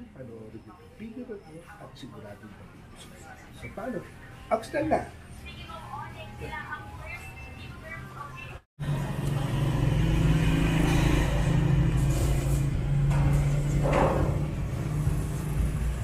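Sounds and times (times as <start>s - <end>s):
machinery humming and rumbling: 8.8s - 16.0s.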